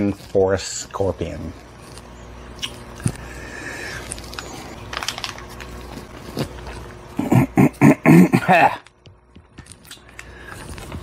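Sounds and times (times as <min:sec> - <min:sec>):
foil pouch crinkling: 0:03.9 - 0:07.1.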